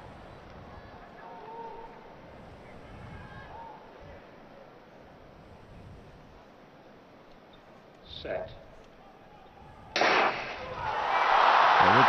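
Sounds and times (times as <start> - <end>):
stadium crowd cheering: 9.0 - 12.0
starting gun crack: 10.0 - 10.9.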